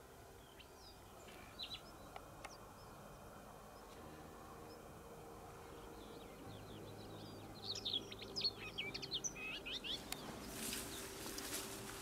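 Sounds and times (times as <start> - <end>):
faint low hum: 0.0 - 12.0
songbird singing: 0.0 - 12.0.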